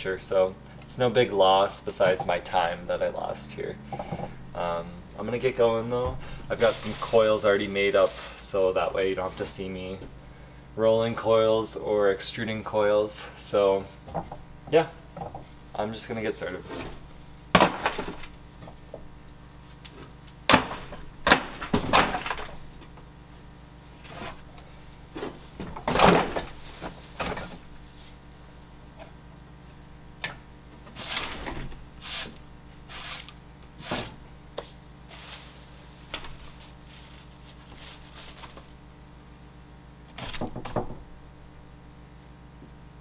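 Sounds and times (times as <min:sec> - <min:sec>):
low steady hum: 0:00.0 - 0:43.0.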